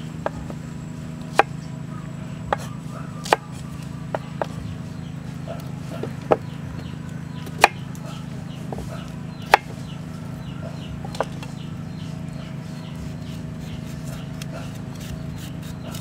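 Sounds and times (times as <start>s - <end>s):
knife chopping on wooden board: 2.5s - 4.6s, 7.5s - 7.9s, 8.7s - 9.8s.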